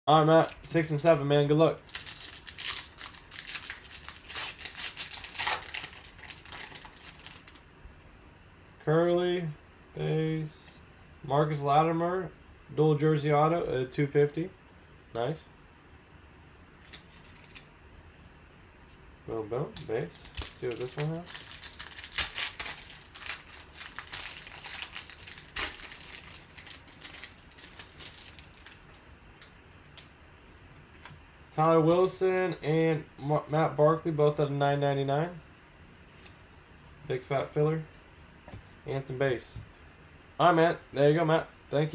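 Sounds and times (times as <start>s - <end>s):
foil wrapper crinkling and tearing: 1.8s - 7.6s, 16.8s - 17.7s, 20.2s - 30.1s.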